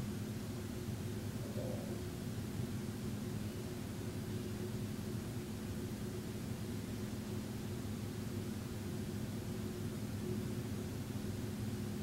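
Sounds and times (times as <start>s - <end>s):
low hum: 1.2s - 2.2s.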